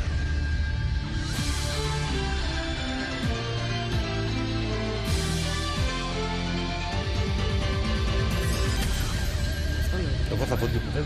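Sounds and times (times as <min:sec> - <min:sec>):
theme music with heavy bass: 0:00.0 - 0:11.0.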